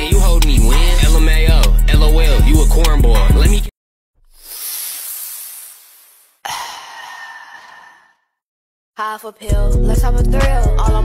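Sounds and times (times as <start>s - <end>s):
person sighing: 4.3s - 8.3s.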